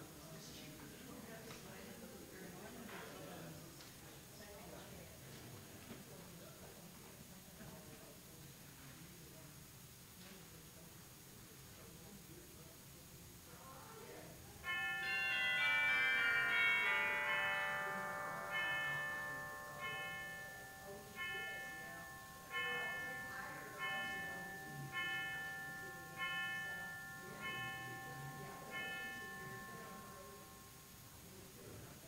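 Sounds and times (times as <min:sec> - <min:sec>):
cascade of bell chimes: 0:14.6 - 0:31.2.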